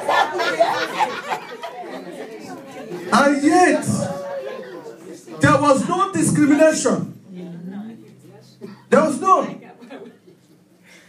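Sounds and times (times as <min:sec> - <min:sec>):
chatter of people in a hall: 0:00.0 - 0:11.0.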